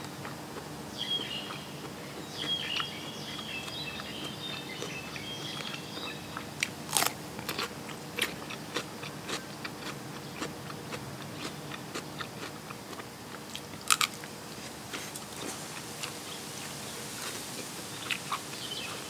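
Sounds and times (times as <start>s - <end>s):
crunching raw cucumber: 3.6s - 10.6s, 11.2s - 16.2s.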